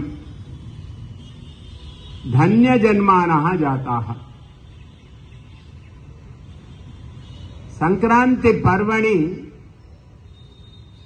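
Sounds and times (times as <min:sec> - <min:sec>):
man speaking: 0:07.8 - 0:09.6.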